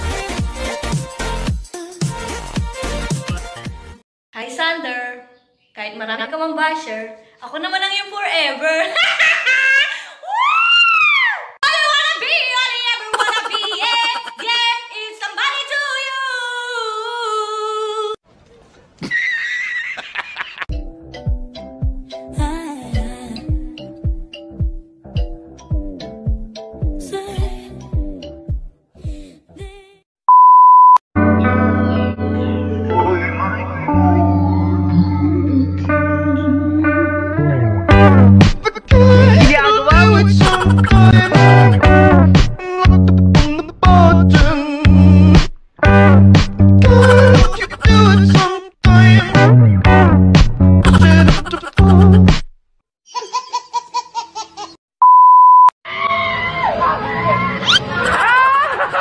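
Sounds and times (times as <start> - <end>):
baby giggling: 13.1 - 14.6, 40.2 - 41.8, 47.0 - 48.2, 50.8 - 52.3, 53.1 - 54.8
loud steady beep: 30.3 - 31.0, 55.0 - 55.7
crowd voices and shouts: 55.9 - 58.1.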